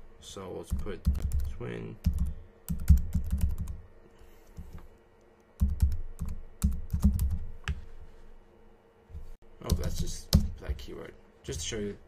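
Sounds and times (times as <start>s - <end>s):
computer keyboard typing: 0.7s - 3.8s, 5.6s - 7.4s.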